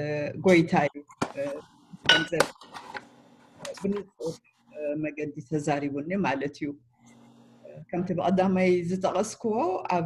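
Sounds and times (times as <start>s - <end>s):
woman's voice: 0.0s - 2.5s, 3.7s - 6.8s, 7.7s - 10.0s.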